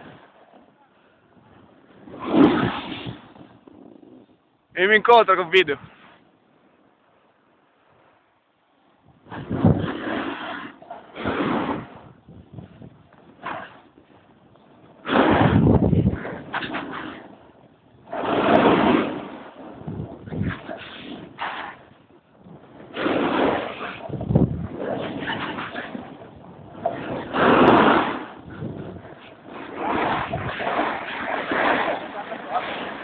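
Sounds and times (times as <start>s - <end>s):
wind rushing over microphone: 1.2s - 6.2s, 9.0s - 33.0s
snowboard edges scraping snow: 1.6s - 6.3s, 9.2s - 17.4s, 18.0s - 33.0s.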